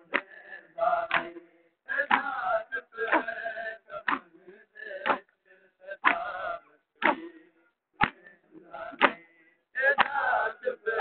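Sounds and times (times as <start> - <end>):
crowd of men chanting: 0.0 - 11.0.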